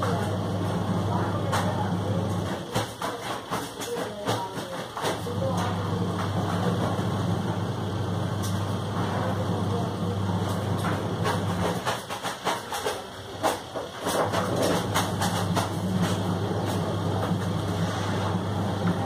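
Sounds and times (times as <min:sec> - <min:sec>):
voices: 0:00.0 - 0:11.6
steady low hum: 0:00.0 - 0:12.0, 0:12.9 - 0:19.0.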